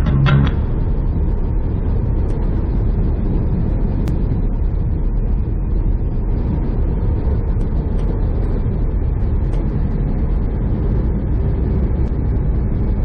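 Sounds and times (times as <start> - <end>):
truck engine and road rumble: 0.0 - 13.0.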